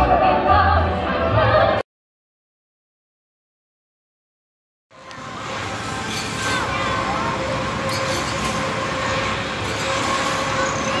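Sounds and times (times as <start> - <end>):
mechanical hum of spinning ride: 4.9 - 11.0.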